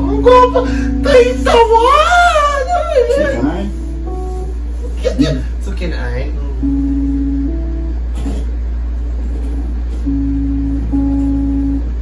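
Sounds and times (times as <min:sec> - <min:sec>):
guitar music: 0:00.0 - 0:12.0
steady low rumble: 0:00.0 - 0:12.0.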